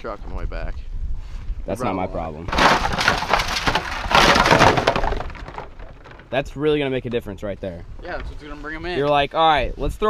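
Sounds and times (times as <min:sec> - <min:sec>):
decoys clattering together: 0:02.5 - 0:06.4.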